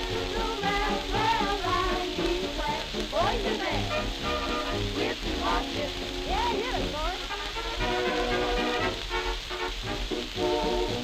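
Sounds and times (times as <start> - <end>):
dance band fox trot record: 0.0 - 11.0
record crackle and hiss: 0.0 - 11.0.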